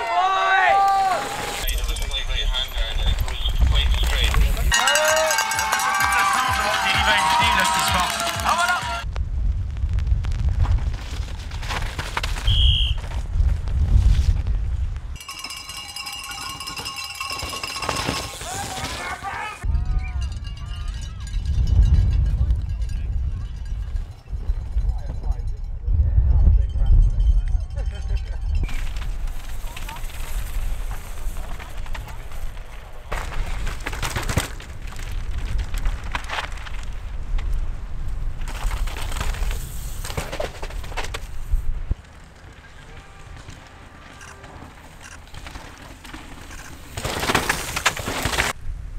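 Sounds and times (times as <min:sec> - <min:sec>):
cowbells ringing: 0:04.7 - 0:08.5, 0:15.2 - 0:18.4, 0:19.8 - 0:28.8
low rumble: 0:09.0 - 0:11.7.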